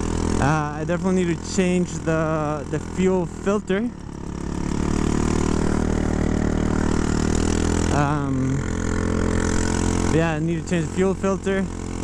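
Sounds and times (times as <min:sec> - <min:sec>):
scooter engine revving: 0:00.0 - 0:12.0.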